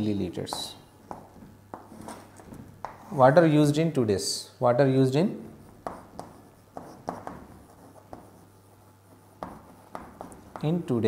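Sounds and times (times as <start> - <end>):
chalk tapping on chalkboard: 0.4 - 3.2, 5.4 - 11.0
chalk scratching: 0.5 - 3.5, 5.4 - 11.0.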